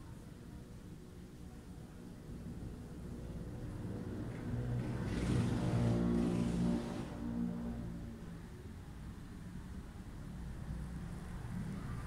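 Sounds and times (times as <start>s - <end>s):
motor vehicle engine: 3.7s - 8.2s.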